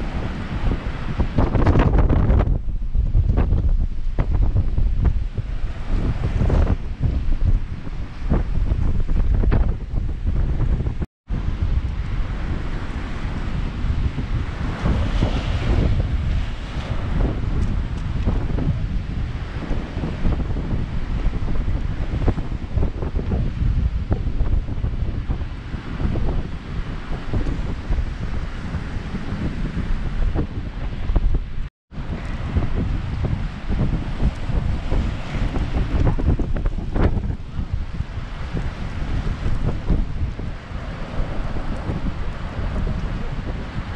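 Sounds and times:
wind buffeting microphone: 0:00.0 - 0:43.9
waves breaking on rocks: 0:11.4 - 0:31.4, 0:32.0 - 0:43.9.

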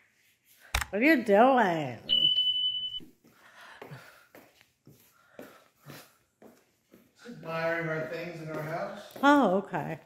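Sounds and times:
steady electronic beep: 0:02.1 - 0:03.1.

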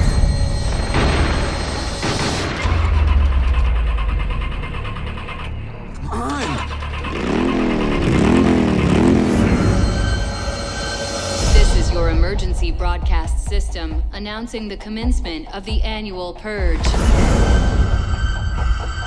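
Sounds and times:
motor running with deep rumble: 0:02.6 - 0:12.2.

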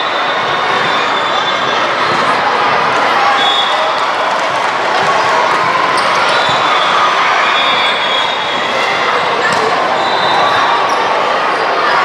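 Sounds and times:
many overlapping voices echoing: 0:00.0 - 0:12.0
volleyball hits: 0:04.3 - 0:10.6.

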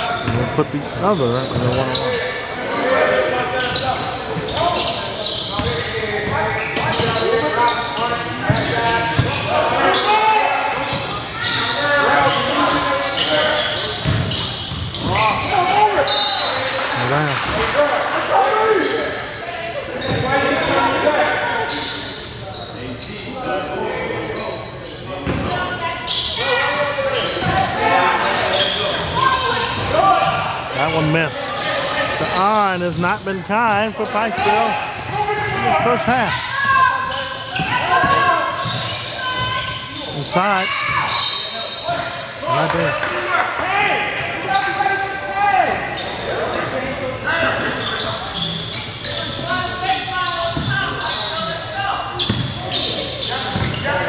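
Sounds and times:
echoing voices: 0:15.1 - 0:40.9.

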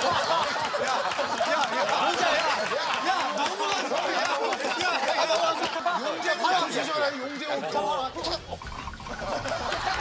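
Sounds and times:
laughter: 0:00.0 - 0:06.7, 0:07.8 - 0:10.0
group of people talking: 0:00.0 - 0:10.0.

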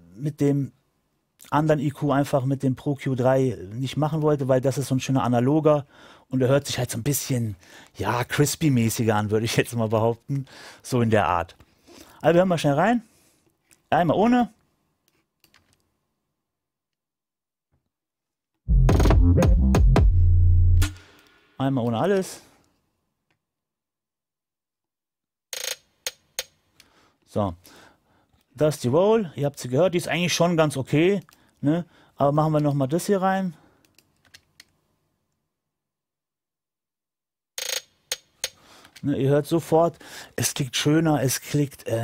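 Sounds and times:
deep bass: 0:18.7 - 0:21.0.

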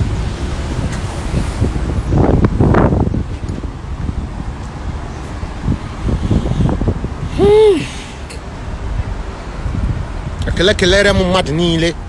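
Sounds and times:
wind buffeting a microphone: 0:00.0 - 0:12.0.

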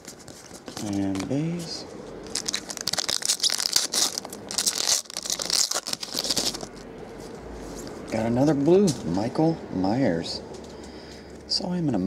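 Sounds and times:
foil wrapper tearing and crinkling: 0:02.3 - 0:06.7.

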